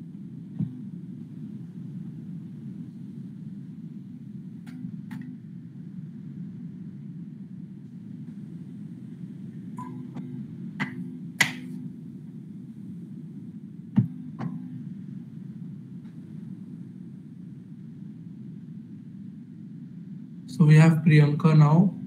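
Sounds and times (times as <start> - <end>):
low background hum: 0.0 - 22.0.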